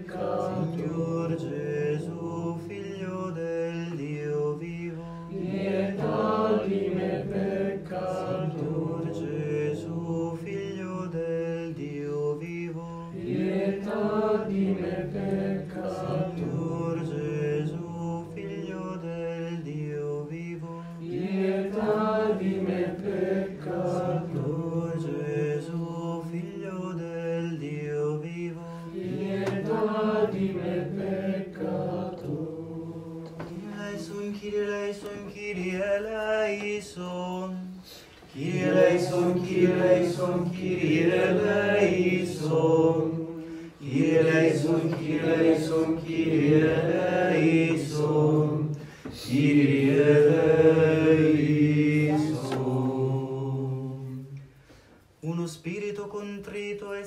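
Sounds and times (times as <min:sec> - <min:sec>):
voices chanting: 0:28.7 - 0:35.7, 0:38.3 - 0:54.3.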